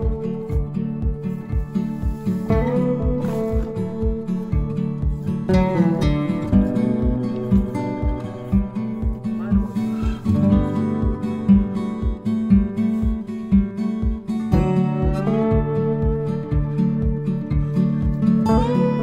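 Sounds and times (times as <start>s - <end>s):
guitar music over low beat: 0.0s - 19.0s.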